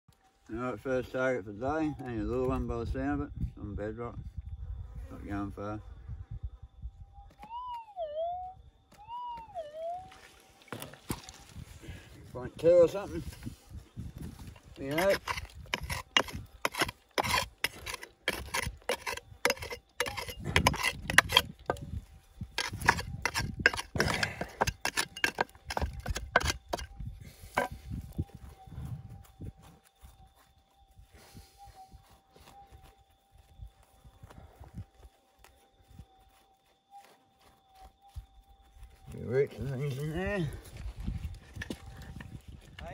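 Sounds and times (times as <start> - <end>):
pick striking rocky soil: 10.6 - 11.8, 12.7 - 28.0
dirt raked by hand: 12.8 - 27.9.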